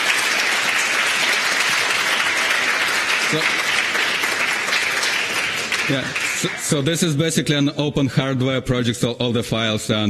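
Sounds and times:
audience applauding: 0.0 - 7.2.

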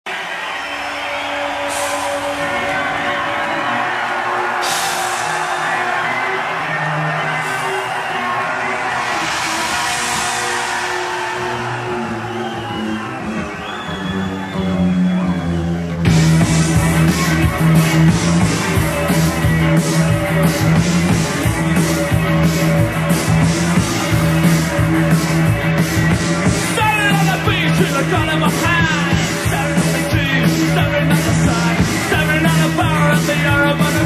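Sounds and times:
live rock band: 0.4 - 34.0.

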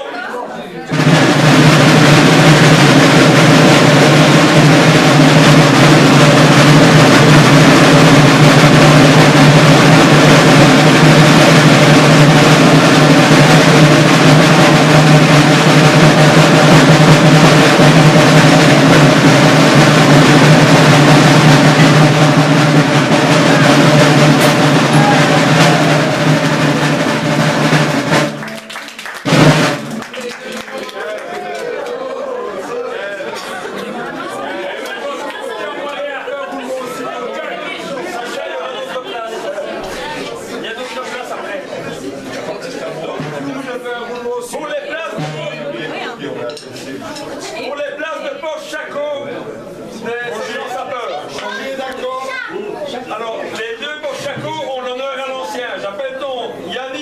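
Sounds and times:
loud burst: 0.9 - 28.4
marching drums rolling: 0.9 - 30.7, 42.0 - 44.0, 45.1 - 46.6.

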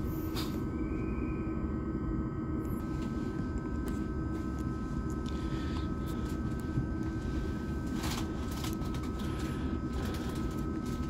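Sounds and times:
train interior hum and rumble: 0.0 - 11.0.

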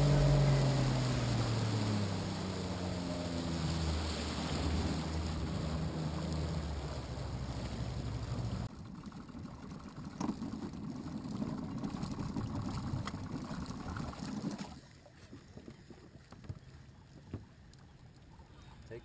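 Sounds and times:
outboard motor running rough: 0.0 - 14.8.

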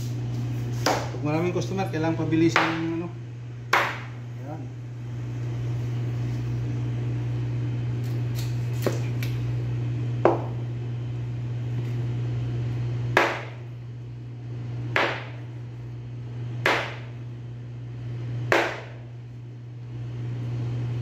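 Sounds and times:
steady low hum: 0.0 - 21.0
knife chopping on cutting board: 0.8 - 1.2, 2.6 - 2.8, 3.7 - 4.2, 8.8 - 9.0, 10.2 - 10.6, 13.1 - 13.6, 14.9 - 15.4, 16.6 - 17.1, 18.5 - 19.0.

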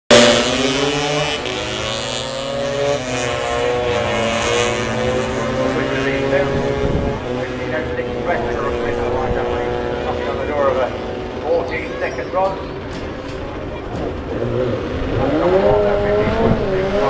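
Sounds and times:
scooter engines at full throttle: 0.1 - 17.0.

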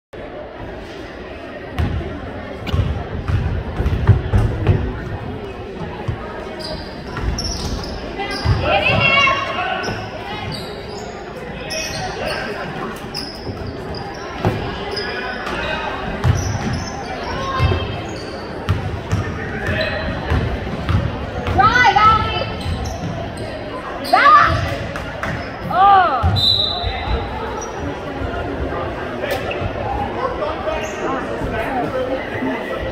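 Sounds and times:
voices echoing: 0.2 - 32.9
sneakers squeaking: 2.6 - 32.3.

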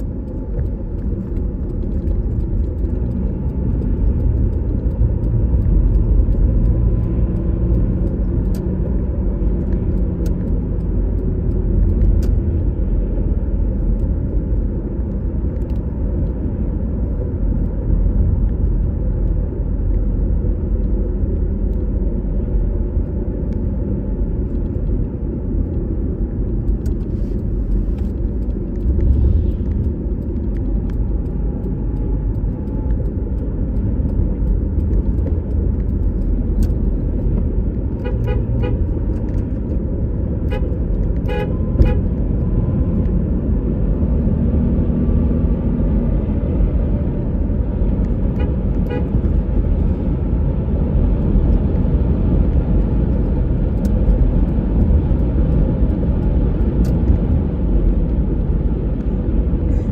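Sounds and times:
road and engine rumble: 0.0 - 59.9
car horn toots: 38.0 - 38.8, 40.5 - 42.1, 48.4 - 49.2.

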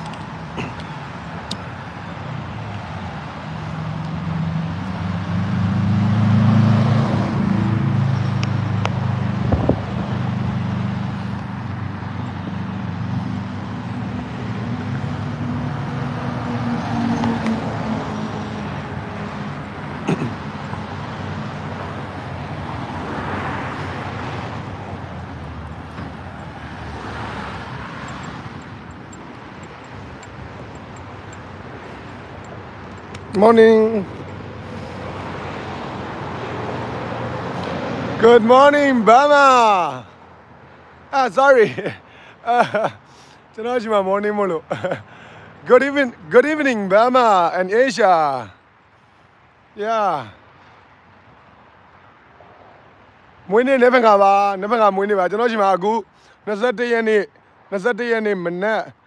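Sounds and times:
vehicle engine rumble passing: 0.0 - 39.0
cars passing: 0.0 - 59.0.

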